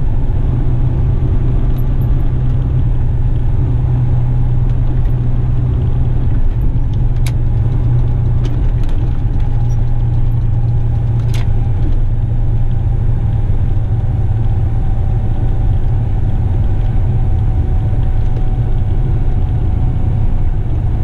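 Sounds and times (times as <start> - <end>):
diesel truck engine droning: 0.0 - 21.0.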